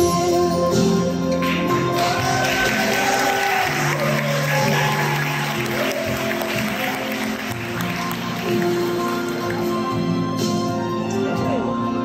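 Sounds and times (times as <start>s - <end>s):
piano ballad backing track: 0.0s - 12.0s
guests applauding: 1.4s - 10.2s.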